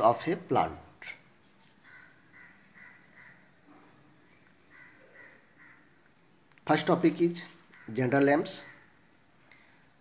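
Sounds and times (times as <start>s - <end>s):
distant bird calls: 0.0s - 10.0s.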